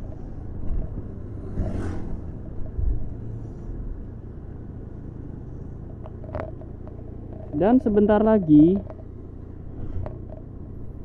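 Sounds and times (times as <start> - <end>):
vehicle engine and road rumble: 0.0 - 11.0.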